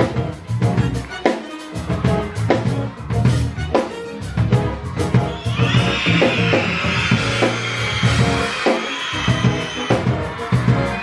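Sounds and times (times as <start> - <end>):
children cheering and screaming: 0.0 - 11.0
live band playing upbeat music: 0.0 - 11.0.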